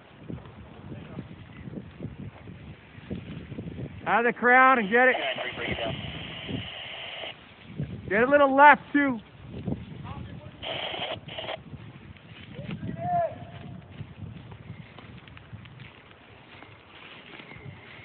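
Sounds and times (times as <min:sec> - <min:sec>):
fire crackling and popping: 0:00.0 - 0:18.0
short hissing bursts: 0:04.8 - 0:07.4, 0:10.6 - 0:11.6.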